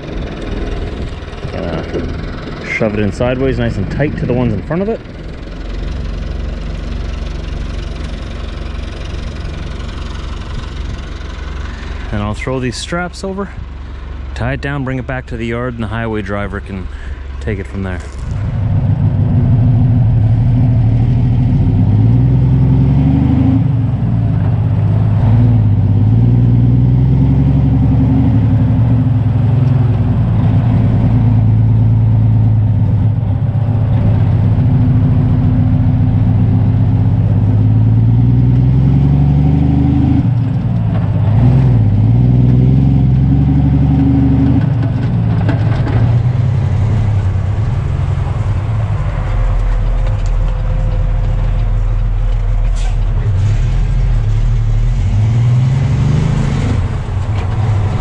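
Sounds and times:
truck diesel engine revving: 0.0s - 58.0s.

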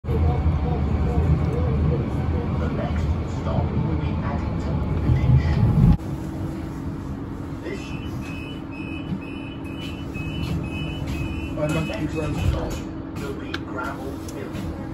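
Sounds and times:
tram running rumble: 0.0s - 14.9s
high beeps: 7.9s - 12.1s.

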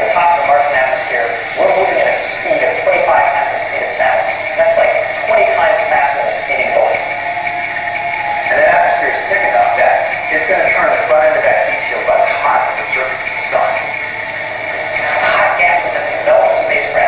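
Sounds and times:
man narrating: 0.0s - 7.1s, 8.4s - 14.0s, 15.0s - 17.0s
background music over loudspeakers: 0.0s - 17.0s.

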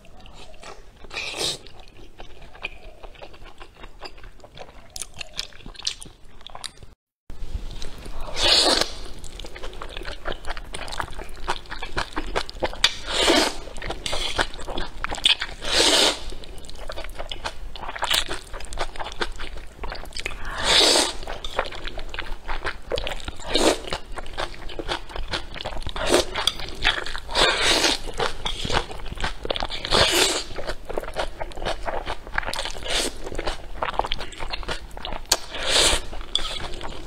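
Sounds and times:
wet chewing and crunching: 0.0s - 7.0s, 7.8s - 37.0s
person slurping noodles: 8.1s - 9.1s, 13.0s - 14.5s, 15.6s - 16.3s, 20.4s - 21.4s, 26.0s - 26.5s, 27.3s - 28.9s, 35.4s - 37.0s.

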